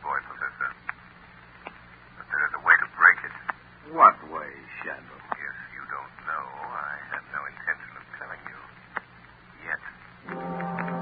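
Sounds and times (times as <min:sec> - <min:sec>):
radio drama speech: 0:00.0 - 0:01.0, 0:02.2 - 0:08.9, 0:09.6 - 0:10.0
low hum: 0:10.2 - 0:11.0.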